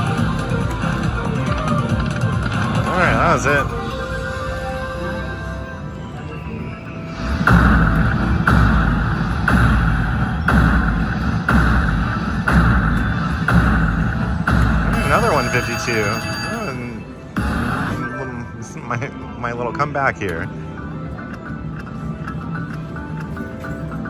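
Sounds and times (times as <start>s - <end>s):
slot machine music with heavy beat: 0.0s - 18.7s.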